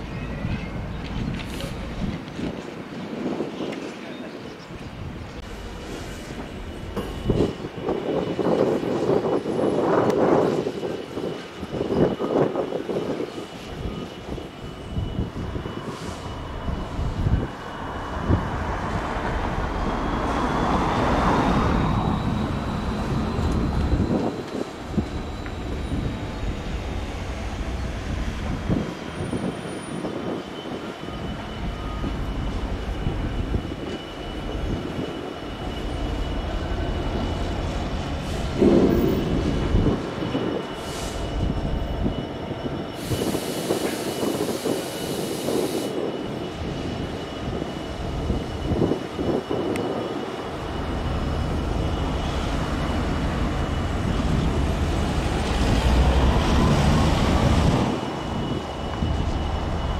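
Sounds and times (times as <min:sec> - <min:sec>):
diesel locomotive engine rumbling: 0:00.0 - 0:59.9.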